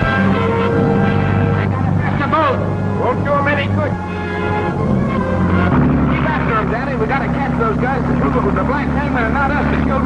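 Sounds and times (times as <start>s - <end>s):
speedboat engine drone: 0.0s - 10.0s
voices talking: 0.0s - 10.0s.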